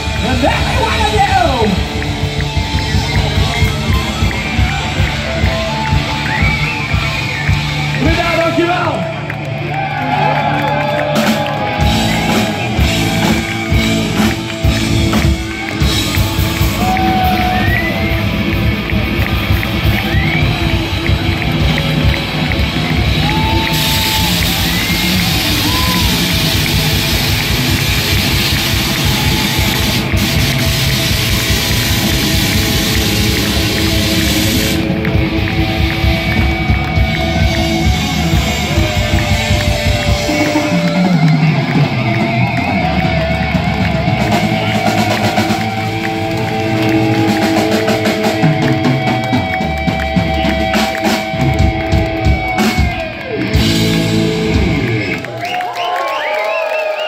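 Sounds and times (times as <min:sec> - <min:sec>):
drum kit: 0:00.0 - 0:09.1, 0:10.2 - 0:55.6
distorted electric guitar lead: 0:00.0 - 0:55.5
bass guitar: 0:00.0 - 0:55.6.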